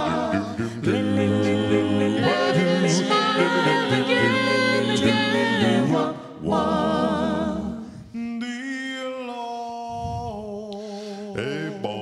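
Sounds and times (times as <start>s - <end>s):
backing vocal harmonies: 0.0s - 12.0s
lead voice singing: 0.0s - 12.0s.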